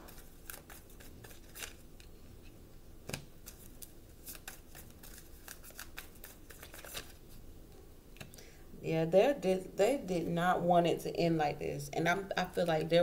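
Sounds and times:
cards being shuffled: 0:00.0 - 0:07.2.

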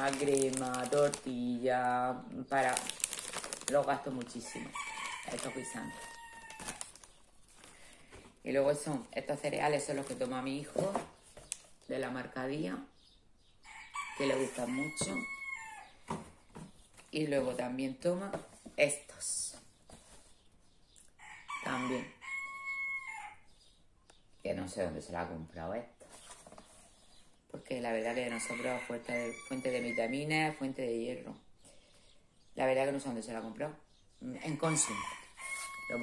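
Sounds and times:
plastic bag rustling: 0:00.0 - 0:01.6, 0:02.5 - 0:11.0
rooster crowing: 0:04.5 - 0:07.0, 0:13.6 - 0:16.0, 0:21.2 - 0:23.5, 0:34.6 - 0:36.0.

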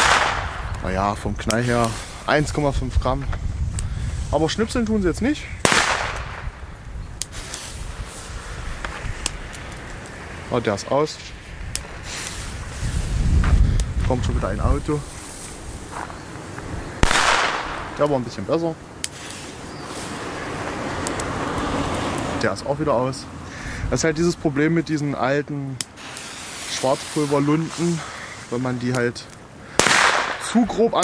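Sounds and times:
faint hiss: 0:00.0 - 0:31.0
car driving past: 0:19.8 - 0:22.4
faint sharp ticks: 0:21.0 - 0:22.3.

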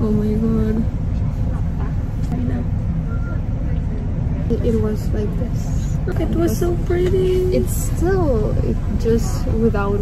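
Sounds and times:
bus engine rumble inside cabin: 0:00.0 - 0:10.0
faint voices: 0:00.0 - 0:10.0.

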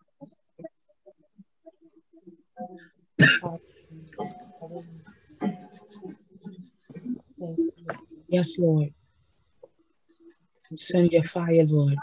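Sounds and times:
person coughing: 0:03.2 - 0:03.6
soft voice sounds: 0:03.2 - 0:08.9.

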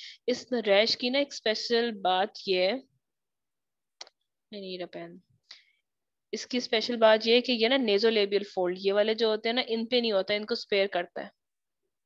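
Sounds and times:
woman speaking: 0:00.0 - 0:02.9, 0:04.5 - 0:05.3, 0:06.4 - 0:11.4.

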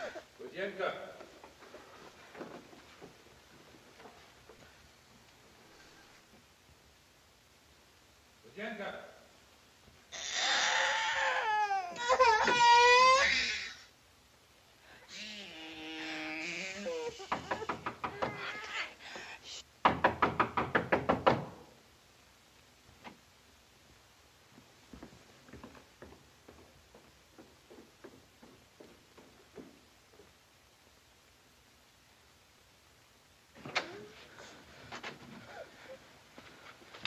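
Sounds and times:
infant crying: 0:00.0 - 0:00.3, 0:10.1 - 0:13.9, 0:15.1 - 0:19.2
soft footsteps: 0:01.0 - 0:06.8, 0:22.8 - 0:30.8, 0:33.6 - 0:37.0.

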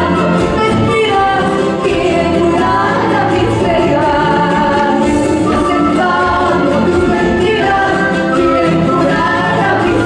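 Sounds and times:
strummed guitars: 0:00.0 - 0:10.0
woman singing into a microphone: 0:00.0 - 0:10.0.

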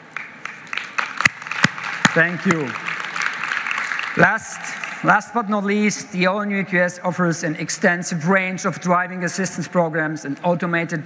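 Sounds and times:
applause: 0:00.0 - 0:05.4
sharp single claps: 0:00.2 - 0:04.9.

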